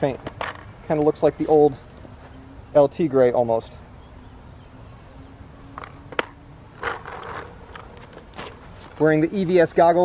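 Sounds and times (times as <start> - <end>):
gear handling noise: 5.7 - 9.3.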